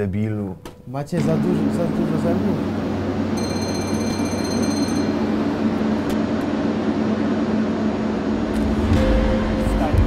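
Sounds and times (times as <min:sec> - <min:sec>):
mechanical rumble with low hum: 0:00.0 - 0:10.0
high ringing tone: 0:03.2 - 0:06.0.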